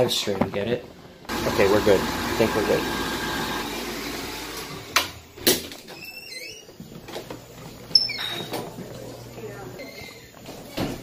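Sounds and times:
hand dryer blowing: 0:01.3 - 0:05.2
faint high squeaks: 0:05.9 - 0:06.8, 0:07.9 - 0:08.6, 0:09.5 - 0:10.4.

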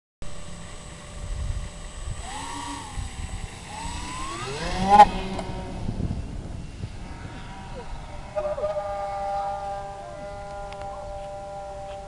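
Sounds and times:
electric motors and propellers whining: 0:00.3 - 0:12.0.

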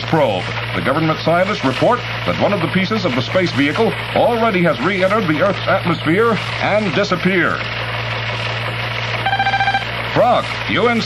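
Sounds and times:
recording hiss and hum: 0:00.0 - 0:11.0
buzzy electronic beep: 0:09.2 - 0:09.9.

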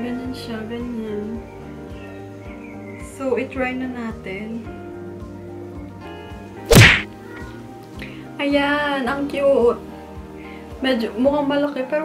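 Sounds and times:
light background music: 0:00.0 - 0:12.0
whack transition sound effect: 0:06.7 - 0:07.1.

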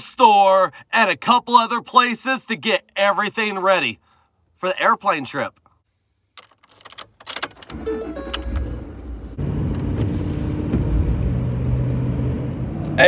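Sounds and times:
keys clicking and jangling: 0:06.4 - 0:08.6
car engine starting and idling: 0:06.4 - 0:13.0.

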